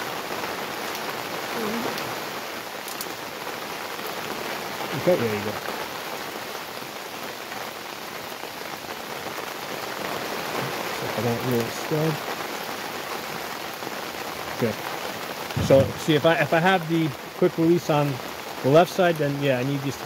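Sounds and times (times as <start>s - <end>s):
steady rain falling: 0.0s - 20.0s.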